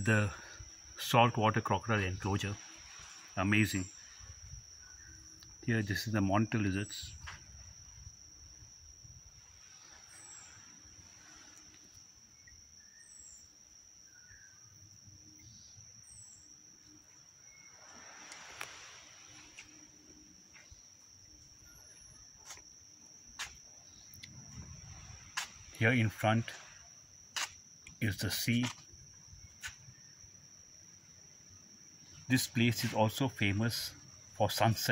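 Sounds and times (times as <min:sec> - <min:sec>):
high-pitched insect drone: 0:00.0 - 0:34.9.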